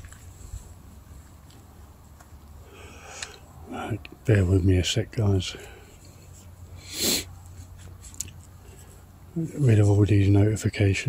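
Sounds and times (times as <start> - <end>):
low steady hum: 0.0 - 11.0
breathy exhale: 2.6 - 3.5, 6.8 - 7.3.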